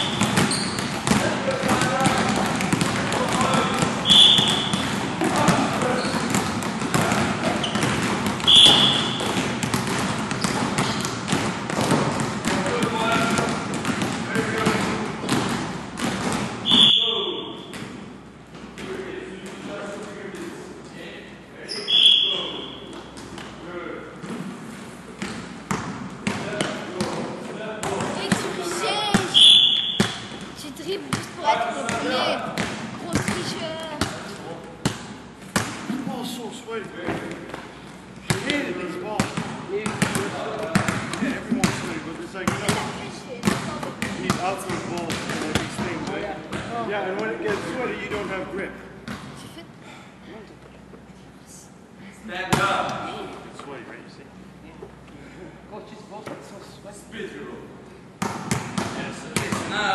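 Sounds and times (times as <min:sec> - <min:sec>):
basketballs bouncing on gym floor: 0:00.0 - 0:20.1, 0:25.1 - 0:36.2, 0:36.8 - 0:48.4, 0:49.0 - 0:49.6, 0:58.2 - 0:59.9
voices in large hall: 0:00.0 - 0:59.9.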